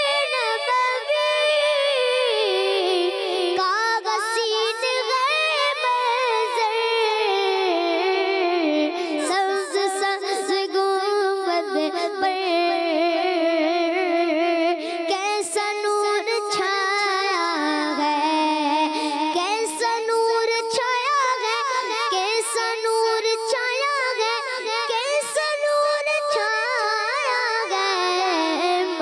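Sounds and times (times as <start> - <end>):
boy singing: 0.0 - 29.0.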